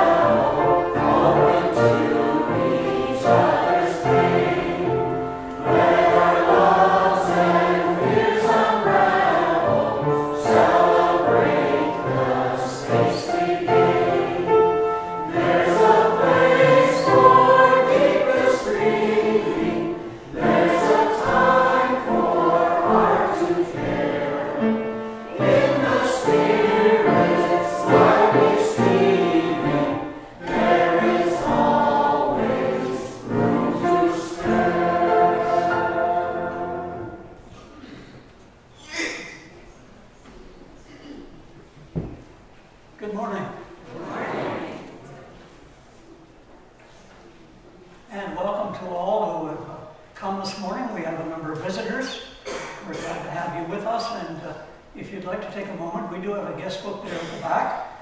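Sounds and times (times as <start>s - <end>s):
choir singing a hymn: 0.0s - 38.1s, 43.8s - 45.9s, 52.4s - 58.0s.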